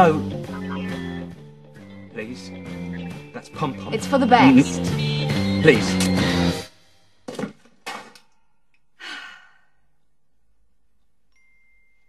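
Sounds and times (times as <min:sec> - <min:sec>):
person sighing: 0:09.0 - 0:09.8.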